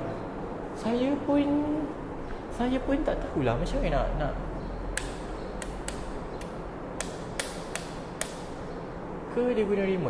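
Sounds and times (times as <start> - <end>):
switch clicking: 5.0 - 8.6.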